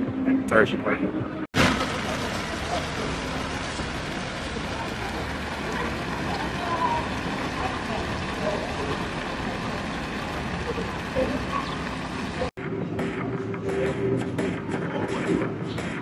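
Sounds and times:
fountain splashing into pool: 0:01.6 - 0:12.6
faint voices: 0:01.8 - 0:12.5.

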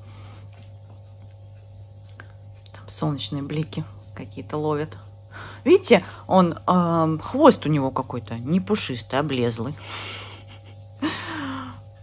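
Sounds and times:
steady low hum: 0:00.0 - 0:12.0
person breathing: 0:05.3 - 0:06.3, 0:09.8 - 0:12.0
breathy voiced sigh: 0:11.0 - 0:11.9.

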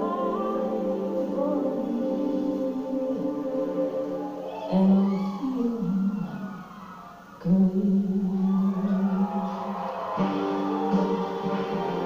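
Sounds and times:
person singing long notes: 0:00.0 - 0:12.0
slow musical backing: 0:00.0 - 0:12.0.

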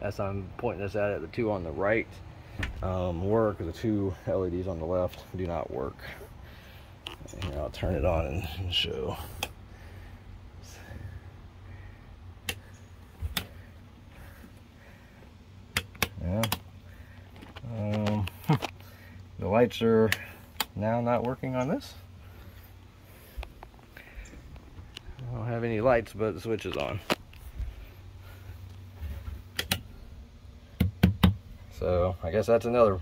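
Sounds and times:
low steady rumble: 0:00.0 - 0:33.0.

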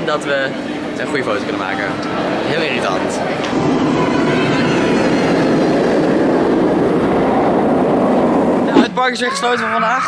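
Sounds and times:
roller coaster rumbling on track: 0:00.0 - 0:10.0.

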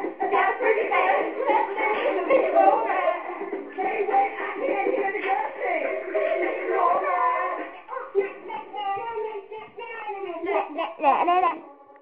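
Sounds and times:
child singing: 0:00.0 - 0:12.0.

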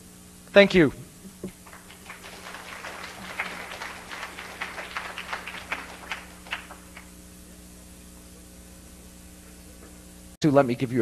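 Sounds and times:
audience applauding: 0:01.6 - 0:07.2.

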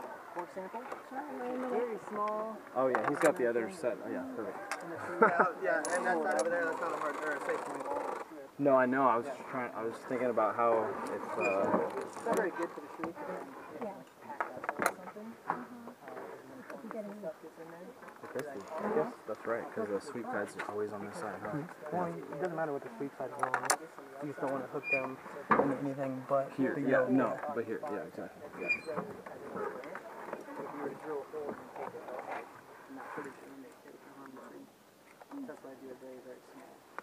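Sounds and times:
people talking indistinctly: 0:00.0 - 0:36.9.

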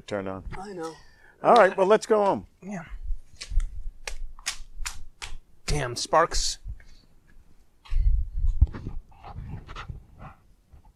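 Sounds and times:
phone microphone handling rumble: 0:08.0 - 0:10.1.

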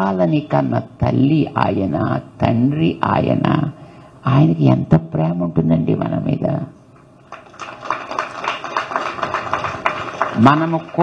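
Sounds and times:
crowd applauding: 0:07.2 - 0:11.0.

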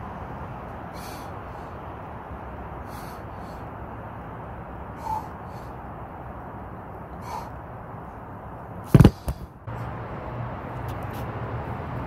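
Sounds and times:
low engine hum: 0:00.0 - 0:12.0
outdoor background noise: 0:00.0 - 0:12.0.

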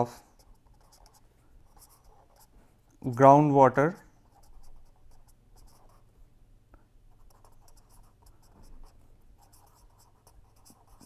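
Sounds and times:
pen scratching on paper: 0:00.3 - 0:02.6, 0:03.8 - 0:06.1, 0:07.1 - 0:11.0.

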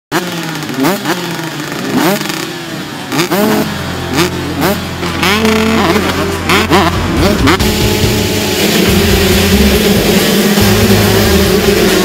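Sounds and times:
motocross bikes revving: 0:00.1 - 0:12.0
music with stepping bass line: 0:06.5 - 0:12.0.

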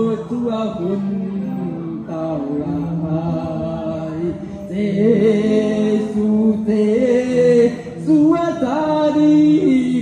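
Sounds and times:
person chanting long notes: 0:00.0 - 0:06.4
brighter chanting voice: 0:00.0 - 0:10.0.

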